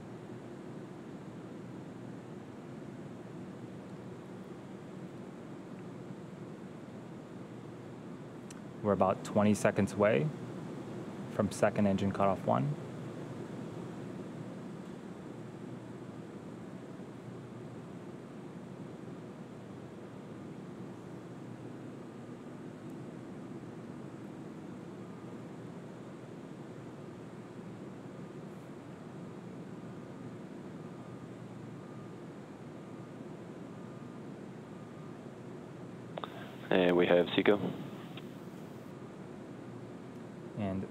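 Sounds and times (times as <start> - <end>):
faint rushing noise: 36.2 - 38.9.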